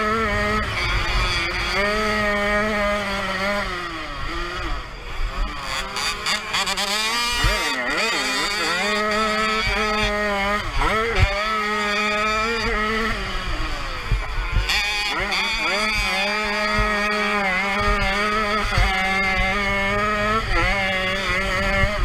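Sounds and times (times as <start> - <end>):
motocross bike engine revving: 0.0 - 22.0.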